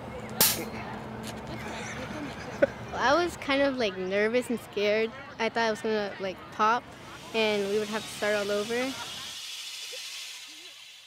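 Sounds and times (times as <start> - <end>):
gas hissing through hose: 7.0 - 11.0.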